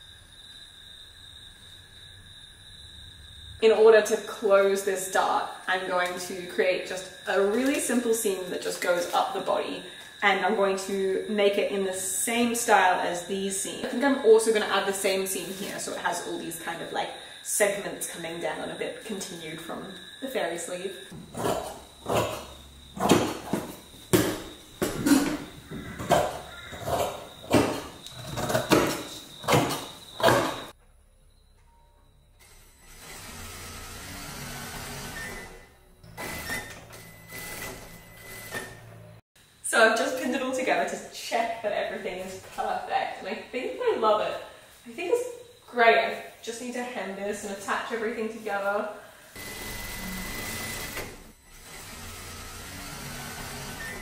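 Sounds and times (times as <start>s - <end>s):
sewing machine running: 32.8s - 38.8s, 49.4s - 54.0s.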